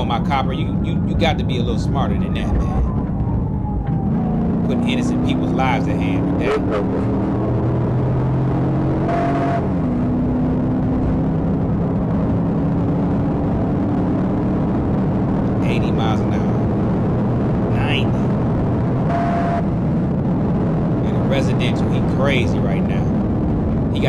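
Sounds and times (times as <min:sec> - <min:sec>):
car engine drone: 0:00.0 - 0:24.0
road noise: 0:00.0 - 0:24.0.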